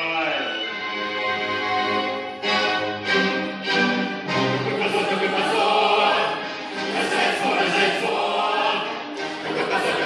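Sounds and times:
instrumental accompaniment: 0:00.0 - 0:10.0
children singing in chorus: 0:05.0 - 0:10.0.

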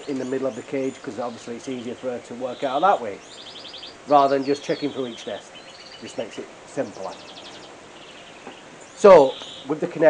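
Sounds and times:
canaries chirping: 0:00.0 - 0:10.0.

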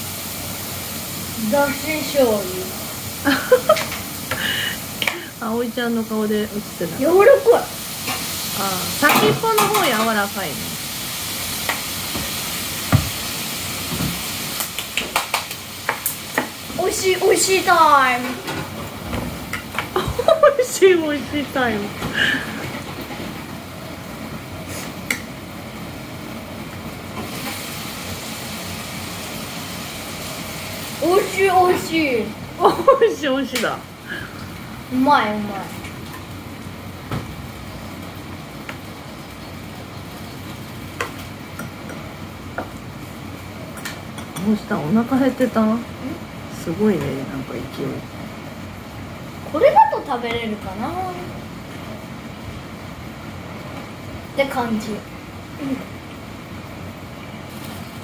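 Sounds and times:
background hiss: 0:00.0 - 0:18.4
room hum: 0:00.0 - 0:58.0.

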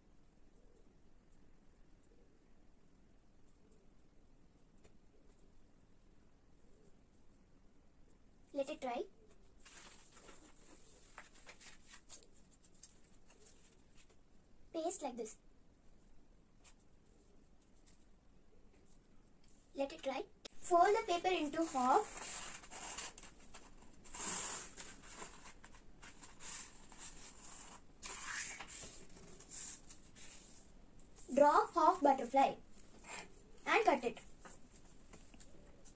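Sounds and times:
paper rustling and scratching: 0:09.2 - 0:14.2, 0:20.8 - 0:31.4.

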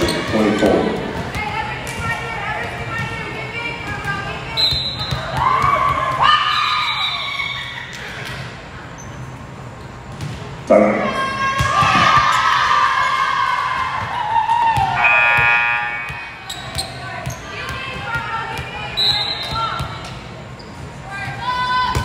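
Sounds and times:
players shouting in gymnasium: 0:00.0 - 0:08.2, 0:10.6 - 0:20.1, 0:20.9 - 0:22.0.

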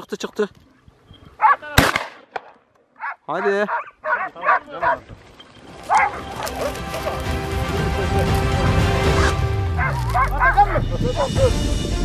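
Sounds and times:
hounds barking and yelping: 0:01.3 - 0:01.6, 0:03.0 - 0:07.5, 0:09.7 - 0:11.5
music with sustained notes: 0:05.6 - 0:12.0.

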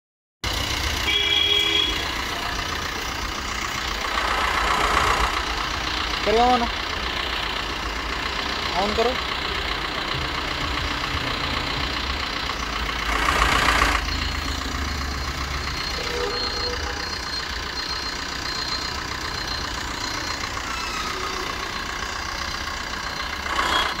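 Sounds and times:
car engine idling: 0:00.4 - 0:24.0.

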